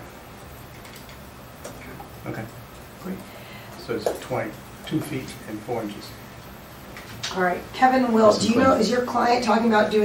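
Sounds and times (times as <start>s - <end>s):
faint irregular clicks: 0.4s - 3.3s.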